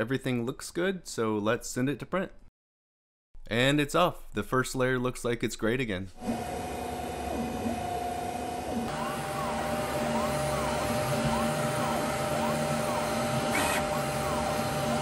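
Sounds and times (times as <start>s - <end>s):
printer fan whir: 6.2s - 15.0s
stepper motors whining: 6.2s - 15.0s.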